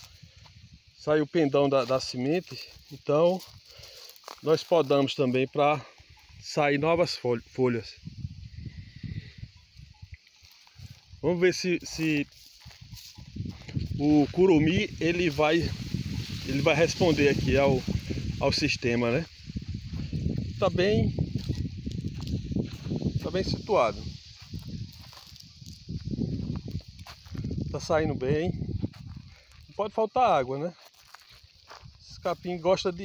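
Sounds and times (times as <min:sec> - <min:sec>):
steady high hiss: 0:00.0 - 0:28.6
wind buffeting microphone: 0:05.9 - 0:29.9
faint high hiss: 0:13.9 - 0:21.5.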